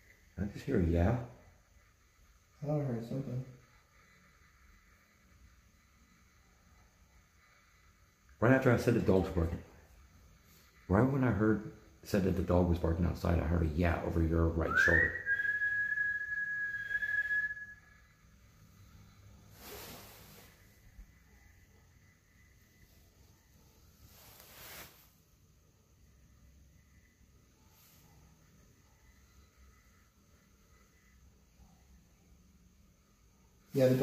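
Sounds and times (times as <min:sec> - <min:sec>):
person whistling: 0:14.7 - 0:18.0.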